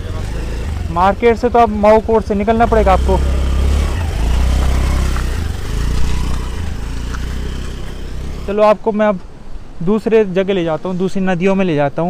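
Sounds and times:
motorcycle engine idling: 0.0s - 8.5s
constant rushing noise: 0.0s - 12.0s.

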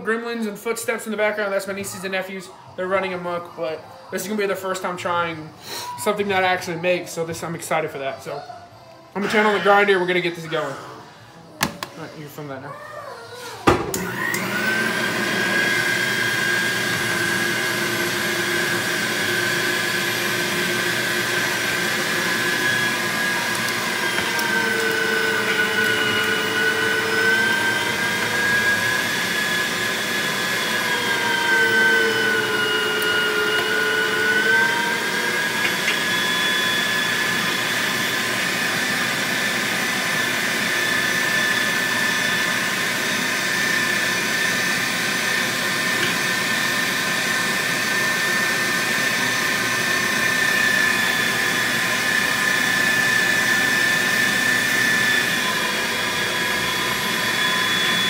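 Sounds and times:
electric meat grinder motor whine: 13.6s - 58.0s.

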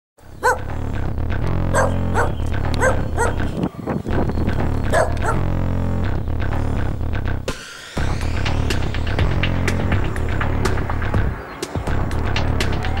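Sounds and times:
dog barking: 0.4s - 0.7s, 1.7s - 3.5s, 4.9s - 5.5s
electronic music with heavy bass: 0.4s - 13.0s.

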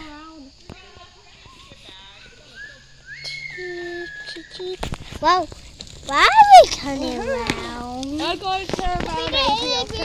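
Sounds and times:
children talking quietly: 0.0s - 10.0s.

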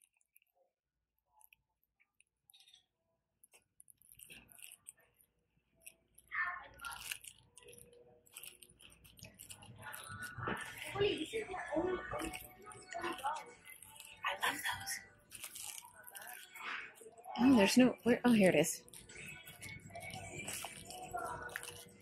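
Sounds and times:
rustling: 5.8s - 22.0s
people talking indistinctly: 9.3s - 22.0s.

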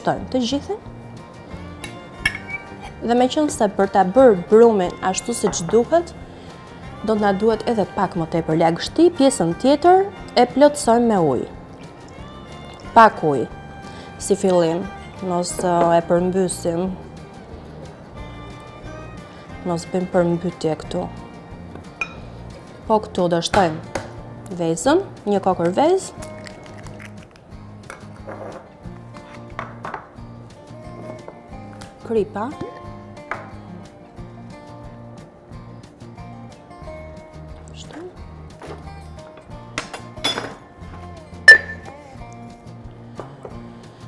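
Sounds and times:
metal spoon clinking glass bowl: 1.8s - 2.7s, 41.5s - 41.9s.

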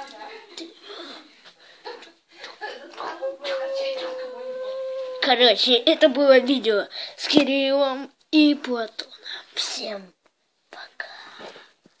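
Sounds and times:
person whispering: 10.7s - 11.5s.

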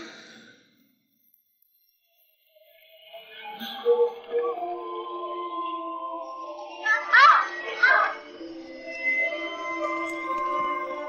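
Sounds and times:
background music: 3.9s - 11.0s.

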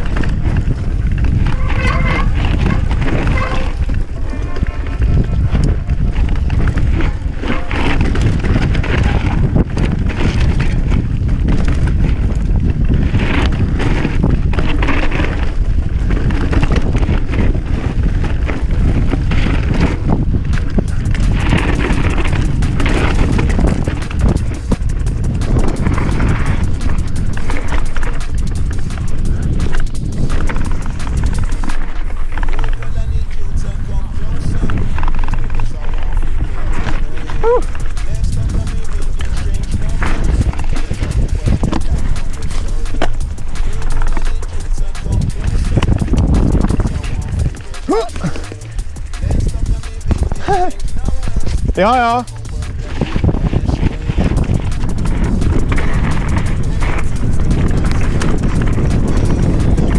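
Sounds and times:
bike rattling: 0.0s - 59.9s
bike tyres on dirt: 0.0s - 59.9s
fast clattering: 0.0s - 59.9s
wind rumble on microphone: 0.0s - 59.9s.

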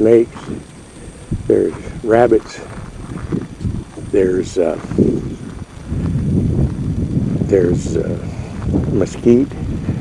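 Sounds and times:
footsteps on gravel trail: 0.0s - 10.0s.

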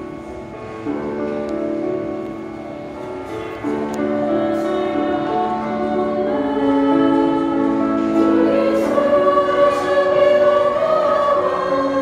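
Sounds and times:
mixed choir singing a hymn: 3.7s - 12.0s.

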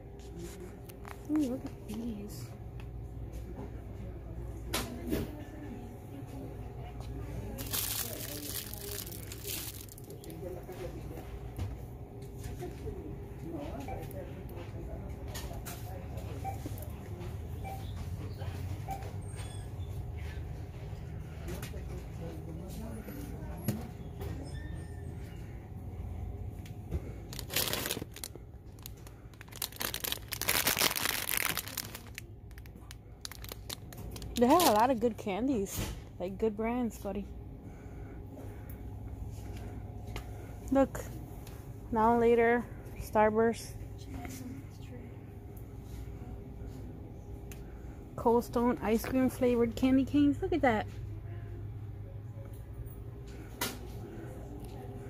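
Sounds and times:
low store hum: 0.0s - 55.0s
plastic packaging crinkling: 7.5s - 10.5s, 27.3s - 35.0s.

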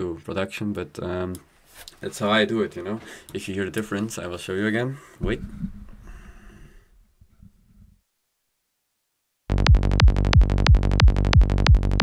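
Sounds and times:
breath noise on microphone: 3.0s - 3.4s, 5.0s - 8.0s.

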